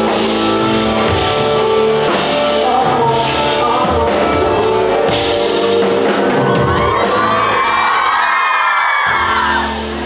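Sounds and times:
live band music: 0.0s - 10.0s
crowd screaming and cheering: 4.7s - 10.0s.

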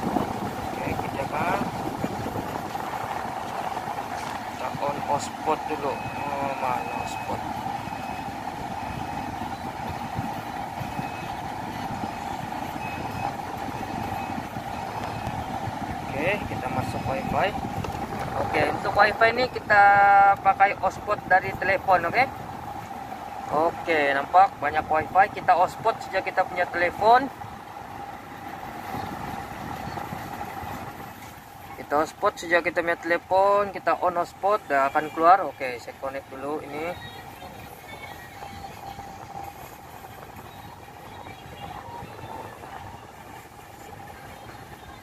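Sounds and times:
car engine idling: 0.0s - 45.0s
climate control fan blowing: 0.0s - 45.0s
faint steady tone: 4.6s - 17.3s.

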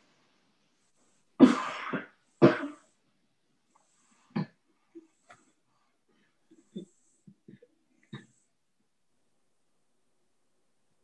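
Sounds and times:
person coughing: 1.4s - 2.9s.

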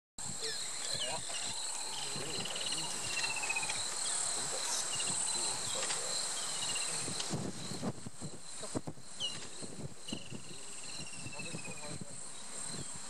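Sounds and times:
cricket chorus shrilling: 0.2s - 13.0s.

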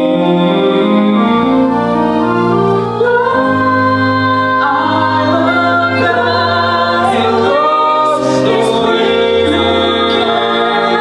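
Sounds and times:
sustained accompaniment chords: 0.0s - 11.0s
voices singing a melody: 3.0s - 11.0s.

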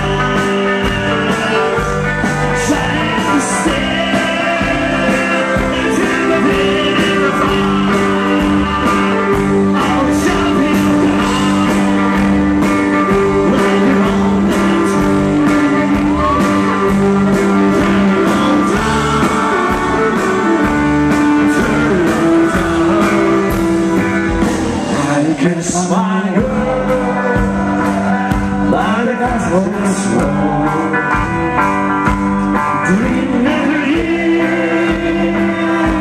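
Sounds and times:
drum beat: 0.0s - 25.2s
accordion chords: 0.0s - 29.9s
guitar: 0.0s - 36.0s.

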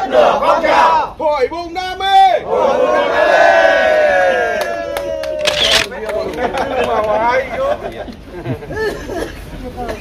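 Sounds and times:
group cheering in unison: 2.4s - 5.8s.

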